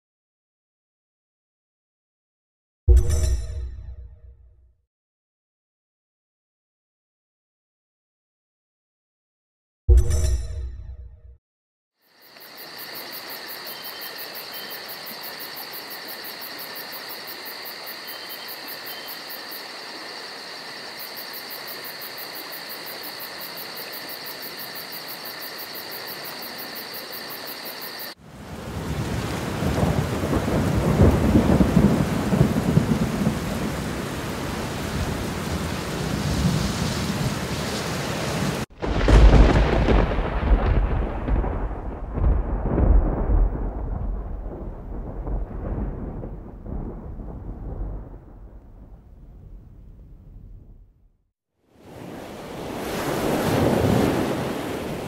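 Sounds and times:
insects chirping: 12.0 - 36.0, 51.8 - 55.0
heavy rain: 12.3 - 48.6, 51.8 - 55.0
rolling thunder: 28.4 - 51.0.

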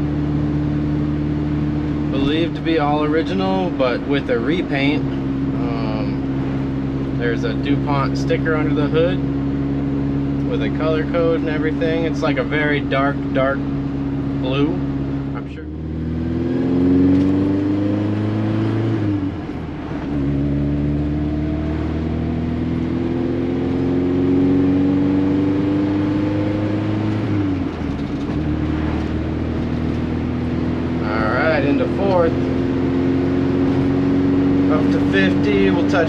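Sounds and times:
car engine accelerating: 0.0 - 36.0.

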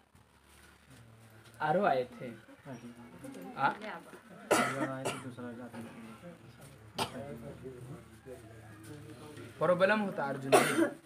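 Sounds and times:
man coughing: 4.5 - 5.4, 7.0 - 7.3, 10.5 - 11.0.

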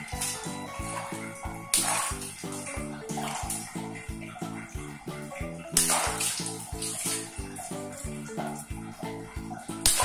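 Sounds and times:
background music with steady beat: 0.0 - 10.0
water sloshing: 0.0 - 10.0
water balloon bursting: 1.7 - 3.7, 5.7 - 7.3.

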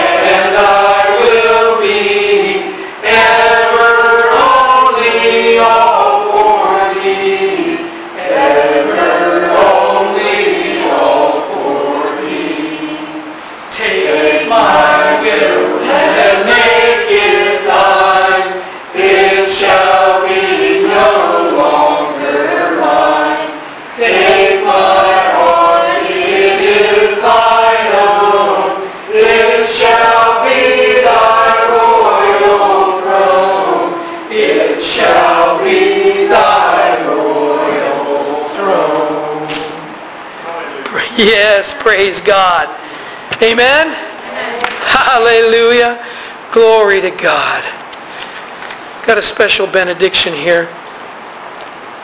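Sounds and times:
group singing a hymn: 0.0 - 43.2.

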